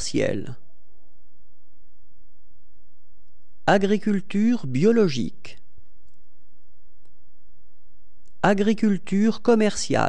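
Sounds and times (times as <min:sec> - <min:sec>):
low background hum: 0:00.0 - 0:10.0
faint click: 0:07.0 - 0:07.2.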